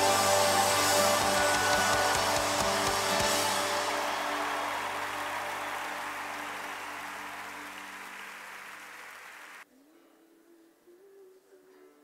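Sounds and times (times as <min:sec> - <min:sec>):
strummed guitar chord: 0:00.0 - 0:05.7.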